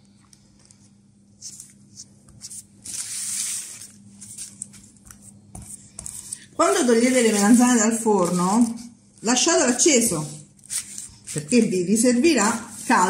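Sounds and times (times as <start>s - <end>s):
baking paper rustling: 1.4s - 13.0s
fork tapping and scraping pastry: 4.6s - 6.4s.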